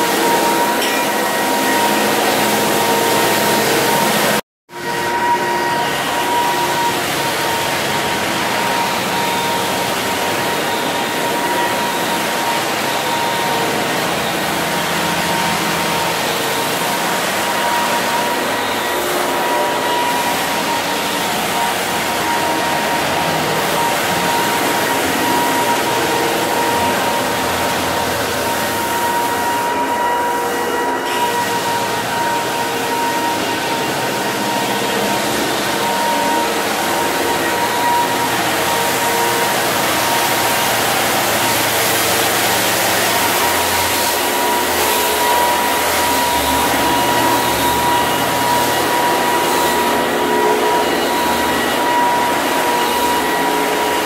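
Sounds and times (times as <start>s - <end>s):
floor sanding machine grinding: 0.0s - 54.0s
motor high whine: 0.0s - 54.0s.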